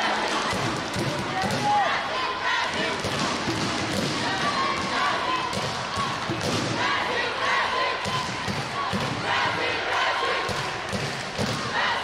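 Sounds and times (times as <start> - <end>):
voices in a hall: 0.0 - 12.0.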